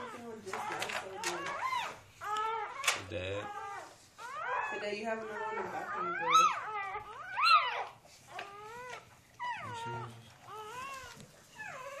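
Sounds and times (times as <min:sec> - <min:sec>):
puppies squealing: 0:00.0 - 0:12.0.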